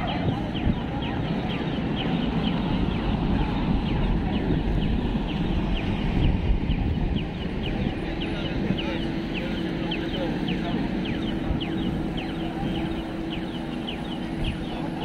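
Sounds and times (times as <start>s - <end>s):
crowd of people: 0.0s - 15.0s
street traffic: 0.0s - 15.0s
crossing signal chirping: 6.7s - 15.0s.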